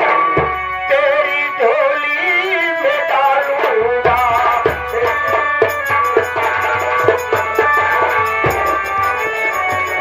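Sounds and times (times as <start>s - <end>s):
drum: 0.0s - 10.0s
man singing into microphone: 0.0s - 10.0s
stage musicians playing: 3.7s - 10.0s.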